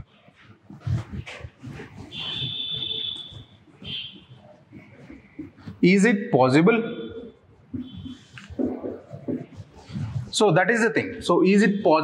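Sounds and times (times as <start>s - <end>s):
marker squeak on whiteboard: 0.8s - 5.7s, 6.9s - 10.2s
marker taps and scratches: 0.9s - 5.8s, 7.6s - 10.3s.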